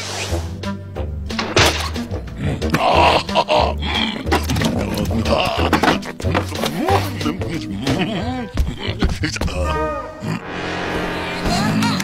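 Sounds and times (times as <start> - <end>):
background music with bass line: 0.0 - 11.6.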